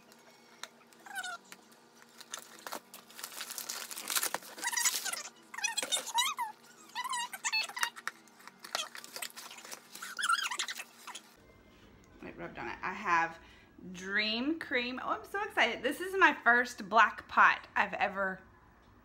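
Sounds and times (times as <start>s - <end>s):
paper packaging rustling: 1.1s - 6.4s, 7.7s - 11.3s
high wavering squeaks: 8.7s - 11.4s.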